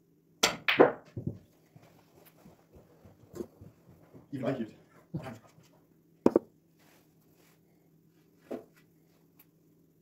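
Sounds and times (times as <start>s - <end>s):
soft ball knocks: 6.3s - 6.5s.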